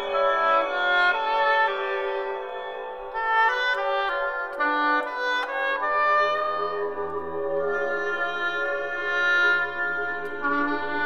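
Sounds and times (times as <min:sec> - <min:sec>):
electronic music: 0:00.0 - 0:11.0
oboe playing short notes: 0:00.0 - 0:11.0.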